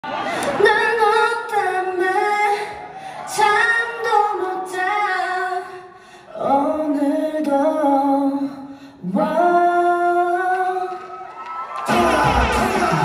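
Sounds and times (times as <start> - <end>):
woman singing unaccompanied: 0.6 - 11.0.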